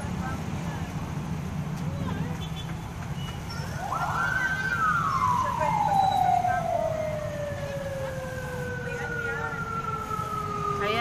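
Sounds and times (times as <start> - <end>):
low traffic rumble: 0.0 - 11.0
siren wailing: 3.7 - 11.0
higher siren tone: 3.8 - 11.0.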